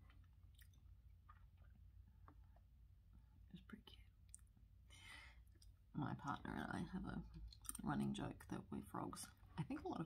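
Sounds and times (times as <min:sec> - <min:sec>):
person speaking softly up close: 0:03.2 - 0:04.5.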